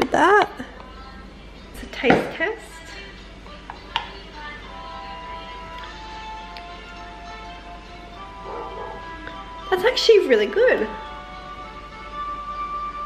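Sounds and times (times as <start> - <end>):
soft music of long held notes: 2.6 - 13.0.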